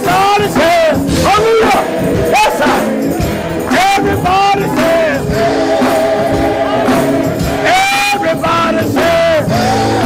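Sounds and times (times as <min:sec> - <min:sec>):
musical accompaniment: 0:00.0 - 0:10.0.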